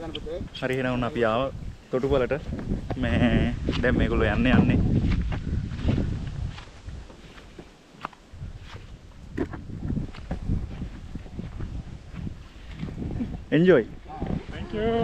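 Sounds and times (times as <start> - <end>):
wind rumbling on microphone: 0.0 - 15.0
footsteps on grass: 0.4 - 15.0.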